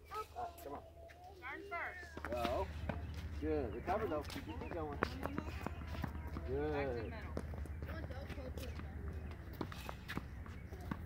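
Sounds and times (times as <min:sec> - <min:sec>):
footsteps on hard court: 0:02.0 - 0:11.0
tennis ball bounces: 0:04.2 - 0:11.0.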